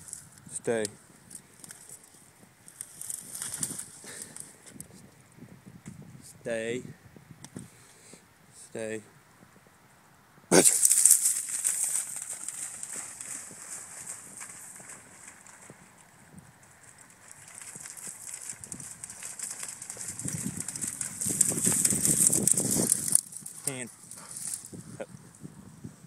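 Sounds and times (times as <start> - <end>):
dry grass and brush rustling: 0.0 - 6.1, 10.6 - 25.5.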